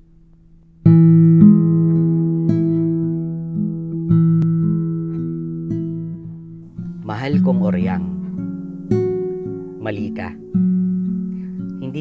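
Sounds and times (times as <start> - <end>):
guitar plucking slow notes: 0.0 - 12.0.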